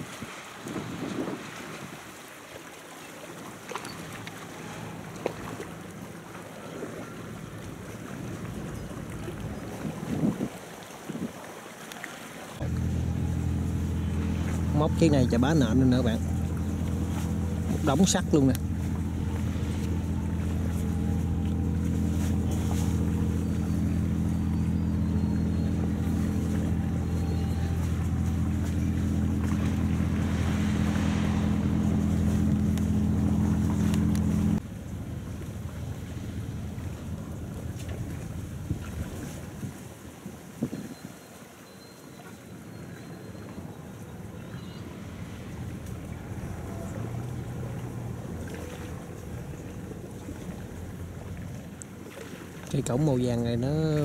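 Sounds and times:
wind on microphone: 0.0 - 2.2, 8.2 - 11.4, 36.8 - 41.2
crane engine running under load: 12.6 - 38.6
faint machinery hum: 12.6 - 39.4.

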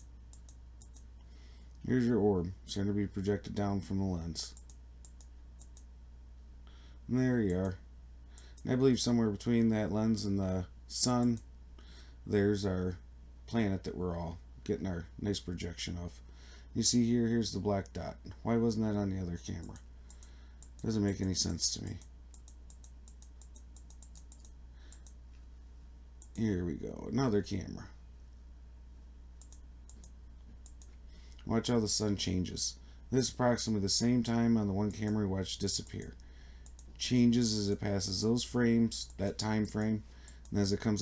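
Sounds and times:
computer mouse clicks: 0.0 - 1.3, 4.5 - 5.9, 19.6 - 25.2, 29.4 - 31.5, 35.8 - 37.0
low steady hum: 0.0 - 41.0
mouse button clicking rapidly: 22.0 - 25.2, 29.4 - 30.9.

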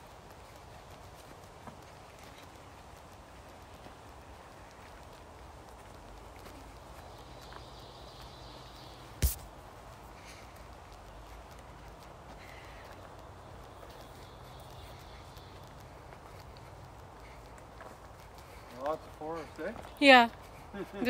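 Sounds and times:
footsteps on leafy trail: 0.0 - 21.0.

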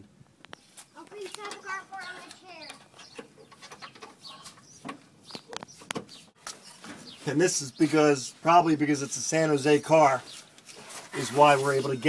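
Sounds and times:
bird calling: 0.6 - 8.0.

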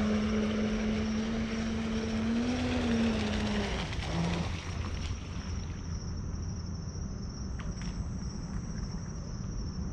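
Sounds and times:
crickets trilling: 0.0 - 9.9.

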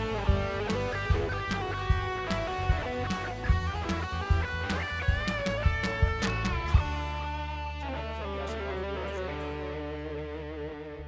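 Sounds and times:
electric guitar notes: 0.0 - 11.0.

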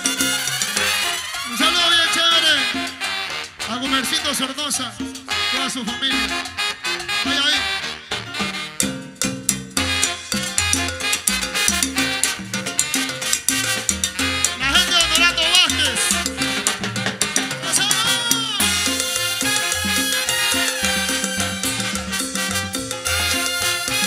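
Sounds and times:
trombone and saxophones: 0.0 - 9.2, 9.8 - 24.0
rhythmic bass line: 0.0 - 24.0
salsa band playing: 0.0 - 24.0
timbales and percussion: 7.8 - 24.0.

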